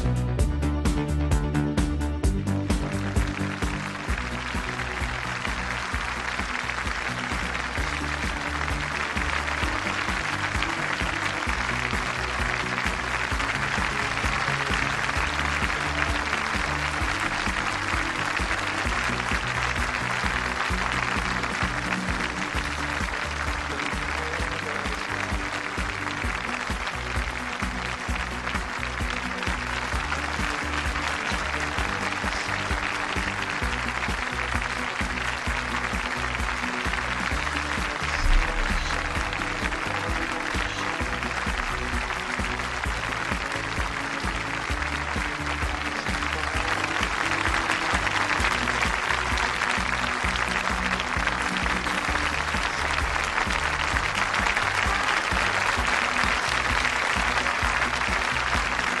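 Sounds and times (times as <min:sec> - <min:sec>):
music with steady low beat: 0:00.0 - 0:59.0
audience applauding: 0:02.2 - 0:59.0.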